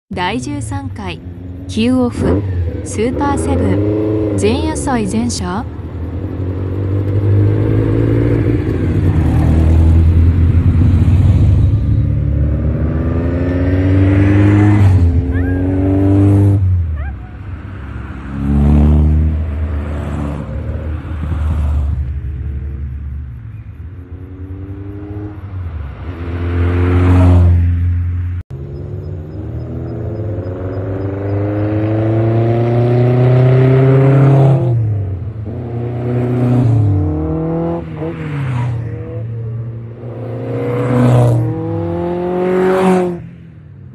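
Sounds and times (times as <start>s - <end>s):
sports cars accelerating past: 1.2s - 5.0s, 5.7s - 43.7s.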